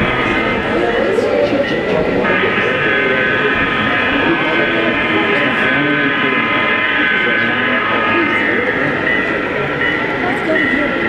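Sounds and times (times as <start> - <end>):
crowd chatter: 0.0 - 11.0
model locomotive whine: 0.0 - 11.0.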